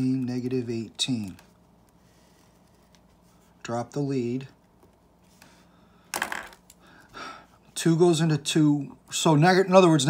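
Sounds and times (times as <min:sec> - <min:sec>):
pen clattering on table: 0:06.1 - 0:06.6.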